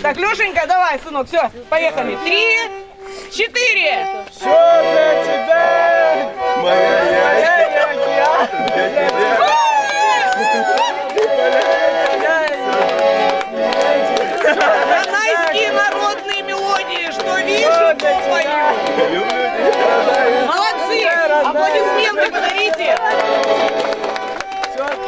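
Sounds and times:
button accordions playing folk tune: 0:00.0 - 0:25.0
men singing: 0:04.4 - 0:16.2, 0:17.2 - 0:22.0.

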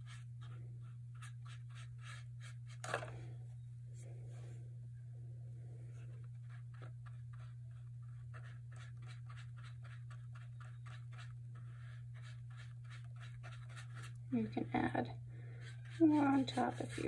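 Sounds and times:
steady low hum: 0:00.0 - 0:17.0
paintbrush strokes on paper: 0:06.0 - 0:17.0.

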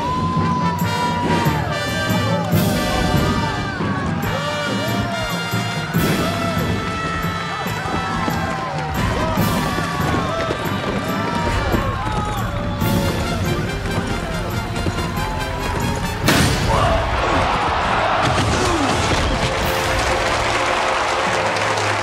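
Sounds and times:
dramatic background music: 0:00.0 - 0:22.0
many voices shouting: 0:00.0 - 0:22.0.

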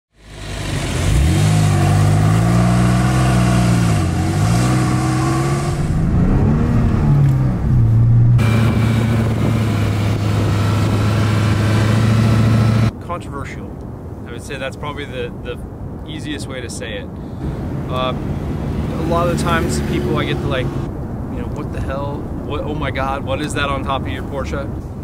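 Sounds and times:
car engine revving: 0:00.2 - 0:12.9, 0:17.4 - 0:20.9.

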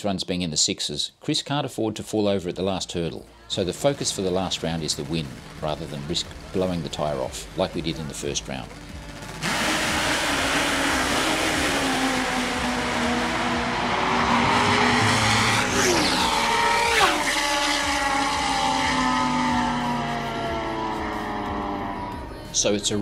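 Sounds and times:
drag racing motorcycles launching: 0:03.5 - 0:22.3
motorcycles passing by: 0:03.8 - 0:22.3.

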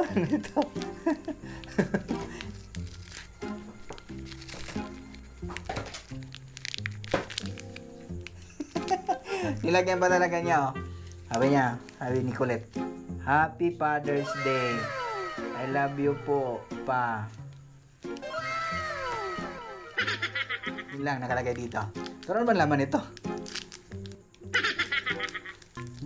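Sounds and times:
paper wrapping crackling: 0:00.0 - 0:12.7, 0:17.1 - 0:18.5, 0:19.1 - 0:26.0.

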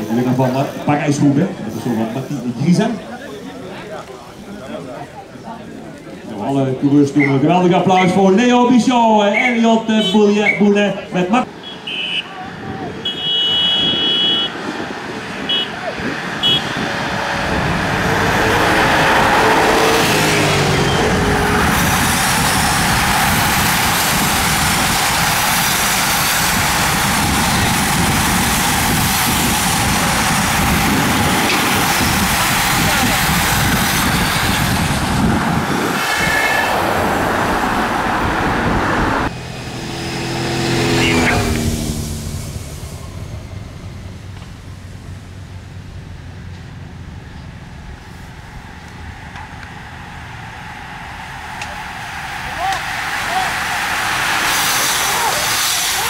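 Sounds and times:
bicycles rushing past: 0:00.0 - 0:06.4, 0:13.0 - 0:56.0
motorbike engines passing: 0:00.0 - 0:56.0
short high horn toots: 0:13.0 - 0:14.6, 0:16.4 - 0:16.8.

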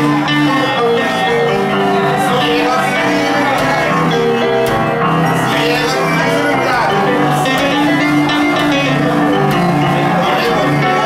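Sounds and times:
upright piano playing blues: 0:00.0 - 0:11.0.

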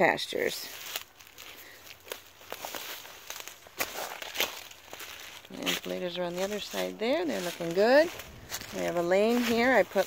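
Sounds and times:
footsteps through dry leaves: 0:00.0 - 0:10.0.

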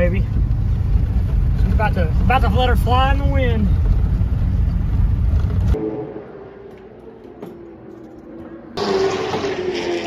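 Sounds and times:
vehicle rumble from inside cab: 0:00.0 - 0:05.8.

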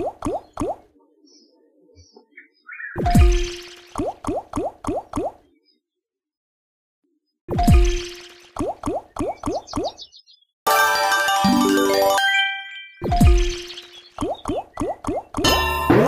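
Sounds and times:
chiming win jingle: 0:10.7 - 0:13.9.

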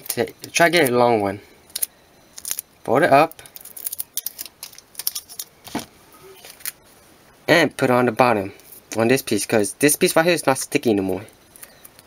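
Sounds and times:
adhesive tape crackling: 0:01.7 - 0:02.7, 0:03.3 - 0:05.5.

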